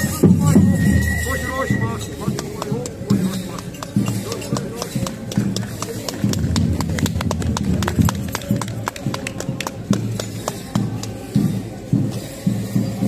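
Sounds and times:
voices chanting rhythmically: 0.0 - 5.7.

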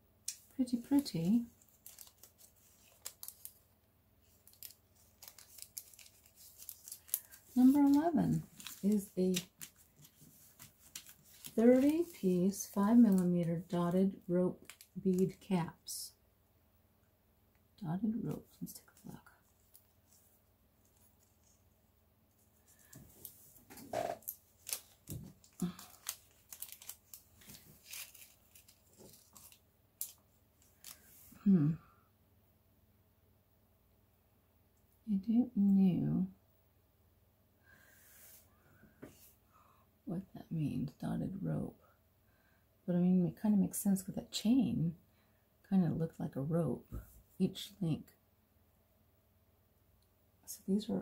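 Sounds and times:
plastic bag crinkling: 0.7 - 13.8, 14.5 - 15.5, 22.6 - 31.2
packaging rustling: 0.9 - 13.7, 22.6 - 31.2.

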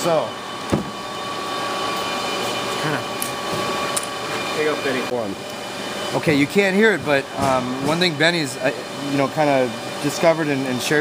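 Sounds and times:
whirring machine noise: 0.0 - 11.0.

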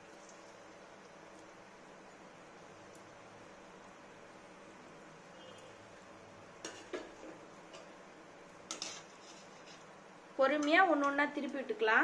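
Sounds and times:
dough deep-frying in oil: 0.0 - 12.0
sharp pops in frying oil: 6.6 - 7.9, 10.6 - 11.6.

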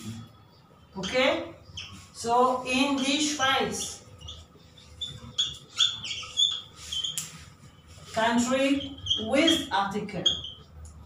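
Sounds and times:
whiteboard marker squeaking: 1.0 - 11.0.

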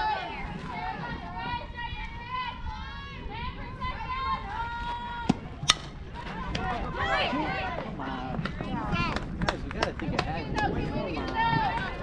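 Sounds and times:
bat hitting ball cracks: 5.3 - 6.0.

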